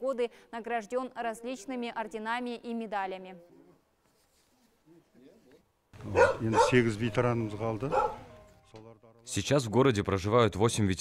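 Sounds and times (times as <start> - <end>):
elderly man speaking: 4.8 - 10.0.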